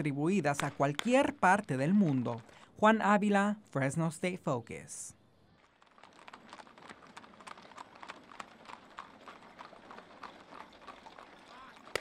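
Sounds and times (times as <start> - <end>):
horse hooves clip-clopping on asphalt: 0.0 - 3.0, 5.4 - 12.0.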